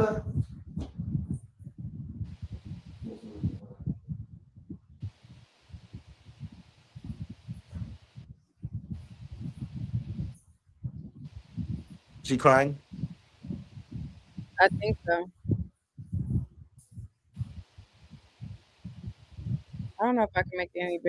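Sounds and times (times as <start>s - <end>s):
muffled voices: 0.0s - 0.5s, 2.3s - 4.0s, 11.2s - 15.3s.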